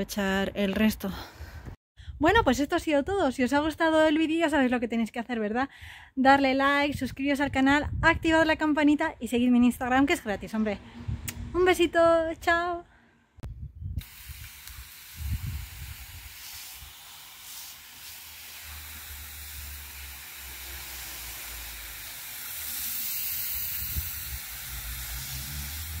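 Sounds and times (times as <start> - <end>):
hose spray nozzle hissing: 14.0 - 26.0.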